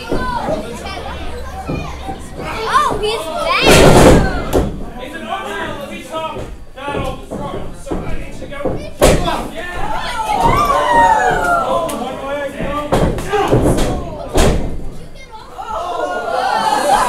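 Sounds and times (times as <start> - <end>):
audience voices and shouts: 0.0 - 17.0
wrestlers slamming onto mat: 3.6 - 4.9, 6.4 - 9.4, 12.6 - 14.9.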